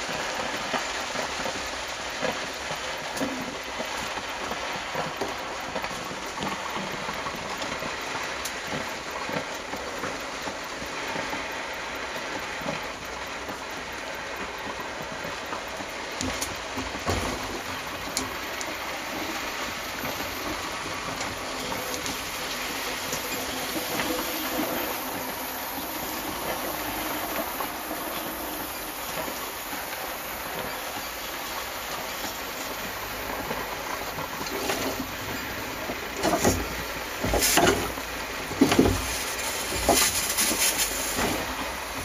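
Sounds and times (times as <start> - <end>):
steady steam hiss: 0.0 - 42.0
steam engine running: 0.0 - 42.0.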